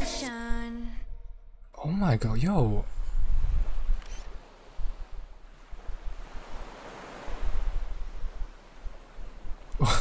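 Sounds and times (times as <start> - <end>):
low wind gusts: 0.0 - 10.0
waves rushing: 2.4 - 10.0.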